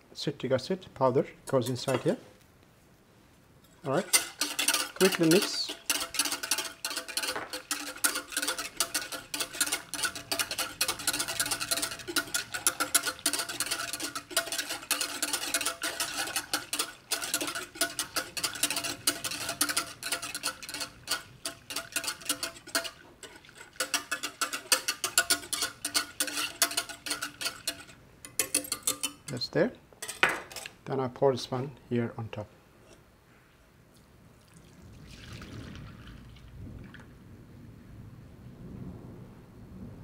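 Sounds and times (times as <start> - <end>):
whisk clicking against metal pan: 3.8 - 29.4.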